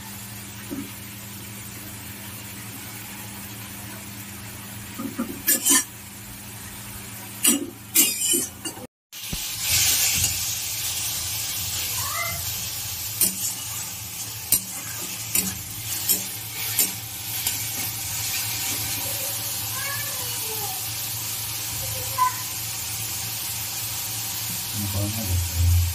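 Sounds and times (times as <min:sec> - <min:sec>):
metal spatula scraping pan: 0:07.5 - 0:08.8, 0:13.2 - 0:18.9
greens sizzling in hot oil: 0:09.1 - 0:25.9.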